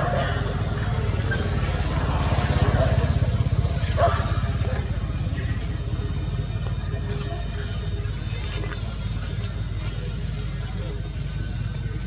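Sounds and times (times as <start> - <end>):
small engine running at low revs: 0.0 - 12.0.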